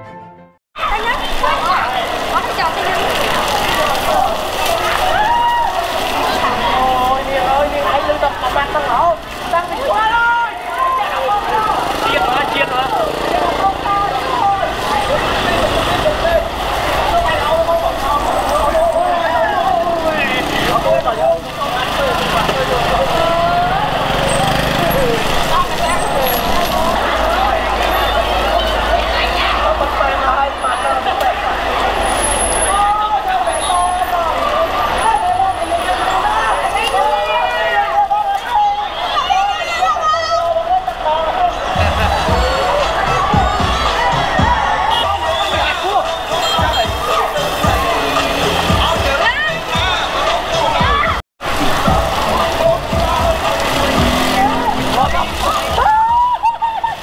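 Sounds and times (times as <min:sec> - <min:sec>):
crowd voices: 0:00.8 - 0:57.0
motorbike engines passing: 0:00.8 - 0:57.0
people shouting and cheering: 0:00.8 - 0:57.0.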